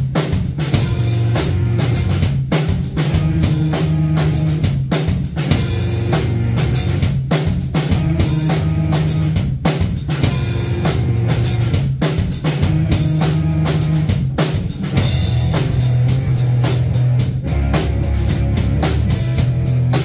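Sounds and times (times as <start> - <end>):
drum kit beat: 0.0 - 20.0
electric guitar: 14.8 - 20.0.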